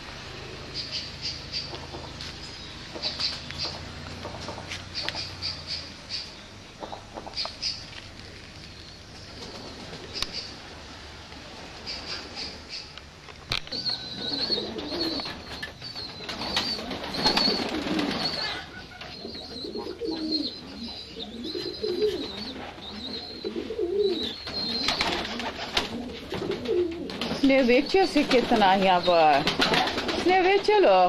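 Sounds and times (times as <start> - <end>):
pigeons cooing: 0.0 - 31.0.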